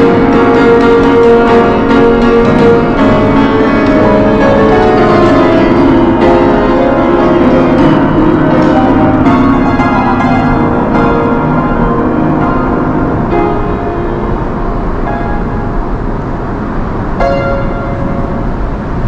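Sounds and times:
piano chords ringing: 0.0s - 19.0s.

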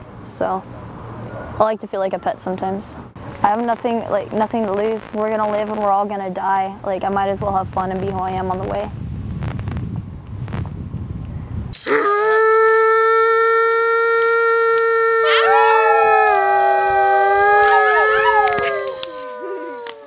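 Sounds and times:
wolf-like howling: 11.9s - 20.0s.

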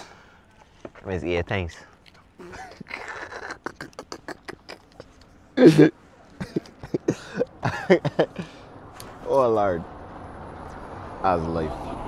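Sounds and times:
man laughing: 2.4s - 8.6s.

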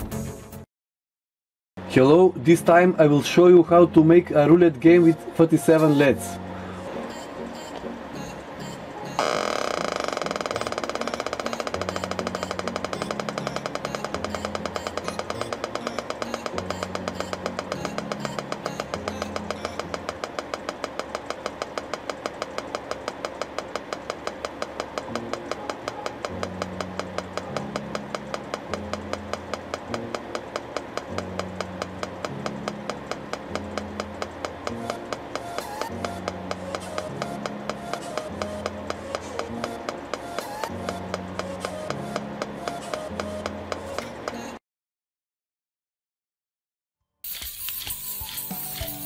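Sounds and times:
electronic ticking: 7.1s - 44.4s.

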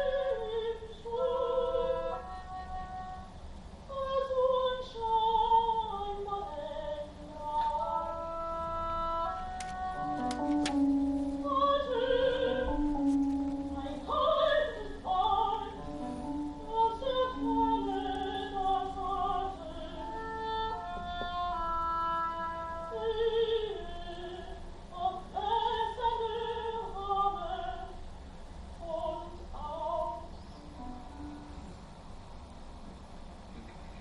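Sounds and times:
woman singing classical song: 0.0s - 28.1s, 28.8s - 31.3s
oboe playing held notes: 1.1s - 3.4s, 7.2s - 14.8s, 15.8s - 23.9s.

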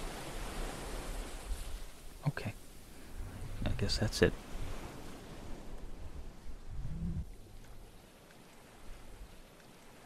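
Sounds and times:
small waves lapping at shore: 0.0s - 10.0s
low rumble: 6.2s - 7.7s.

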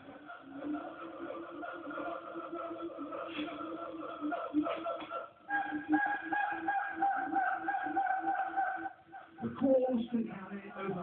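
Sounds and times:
gibbon hoots: 0.1s - 9.6s
long high gibbon call: 1.7s - 9.5s.

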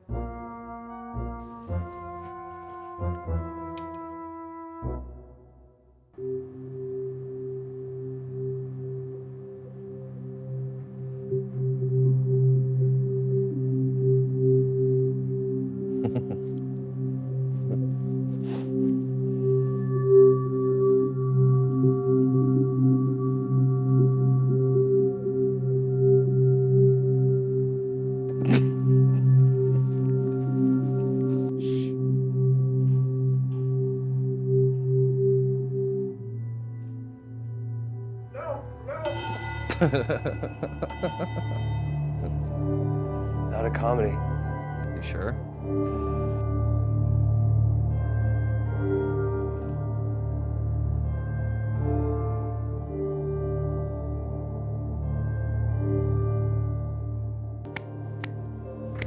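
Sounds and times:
man laughing: 16.0s - 16.6s, 28.3s - 29.4s, 39.7s - 41.6s
ominous low drone: 19.0s - 59.0s.

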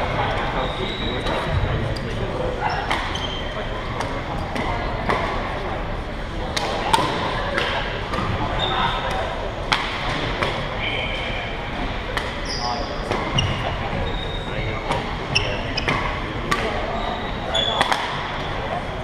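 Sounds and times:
sneakers squeaking on gym floor: 0.0s - 3.7s, 8.4s - 9.2s, 12.3s - 18.8s
rackets striking shuttlecock: 15.8s - 16.8s, 17.7s - 18.4s.

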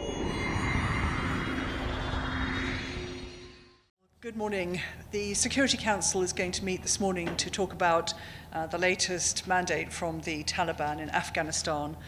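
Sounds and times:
low held tone: 0.0s - 3.9s
rumbling noise swell: 0.0s - 3.9s.

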